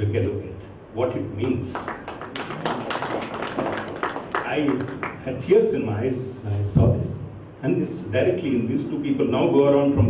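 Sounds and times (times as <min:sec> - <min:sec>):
scattered hand clapping: 0:01.4 - 0:05.3.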